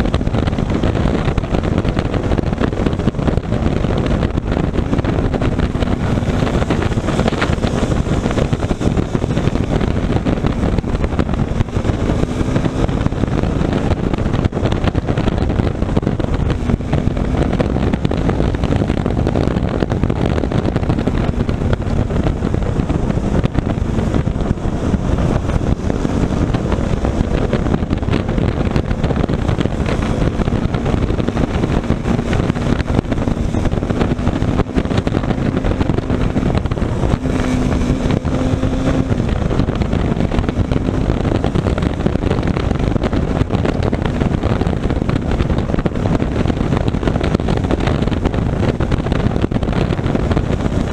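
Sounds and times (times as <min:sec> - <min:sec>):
motorcycle engine running: 0:00.0 - 0:50.9
wind rushing over microphone: 0:00.0 - 0:50.9.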